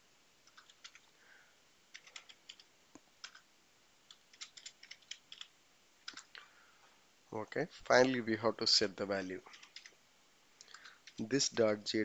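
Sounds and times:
keystrokes on computer keyboard: 0.4s - 1.1s, 1.9s - 3.5s, 4.1s - 6.4s, 9.3s - 10.0s, 10.6s - 11.3s.

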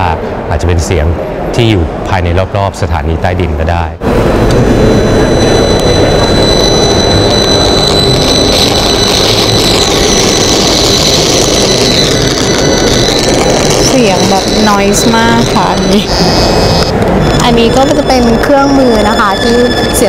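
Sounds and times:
slowly wavering tone: 4.0s - 20.0s
steady high whistling tones: 4.0s - 20.0s.

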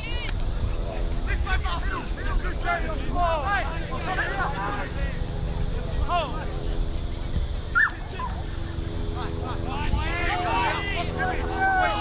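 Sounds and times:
players shouting calls: 0.0s - 6.9s, 7.5s - 12.0s.

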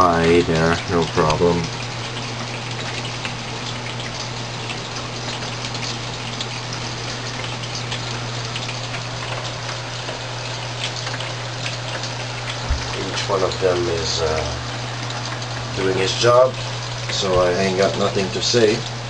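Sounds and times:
steady low hum: 0.0s - 19.0s
water spraying on plastic: 0.0s - 19.0s
low bump: 12.6s - 13.1s.

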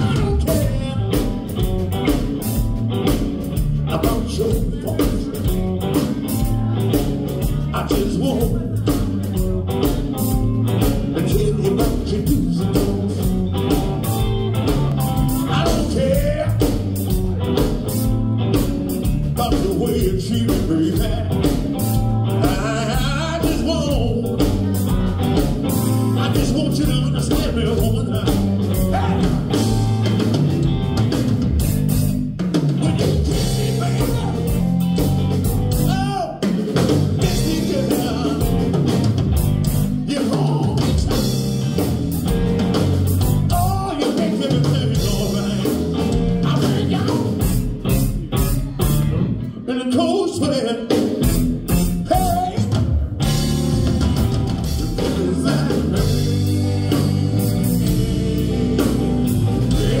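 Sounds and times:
man singing: 0.0s - 2.2s, 3.7s - 14.1s, 15.0s - 17.7s, 19.0s - 30.2s, 32.7s - 38.8s, 40.0s - 41.9s, 43.4s - 47.7s, 49.2s - 53.5s, 54.6s - 60.0s
drum kit beat: 0.0s - 49.4s, 50.8s - 60.0s
electric guitar: 0.0s - 60.0s.

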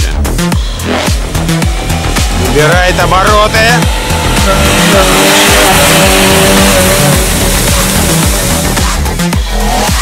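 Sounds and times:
background music with beat: 0.0s - 10.0s
car engine revving: 0.0s - 10.0s
water spray hissing: 4.5s - 9.2s.

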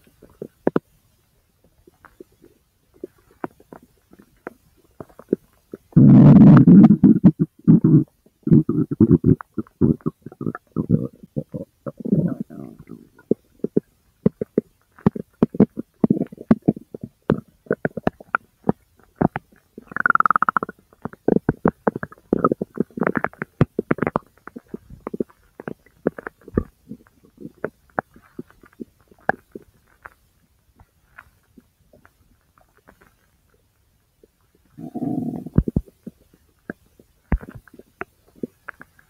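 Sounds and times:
intestine gurgling: 5.2s - 27.7s, 34.8s - 36.2s.

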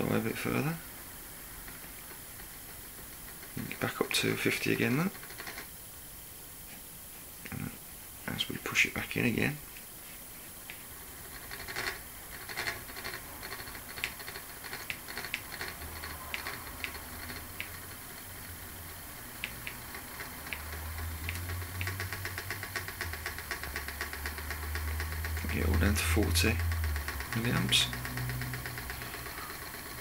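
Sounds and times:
motor rotor humming: 11.0s - 30.0s
motor ticking clicks: 11.2s - 30.0s.

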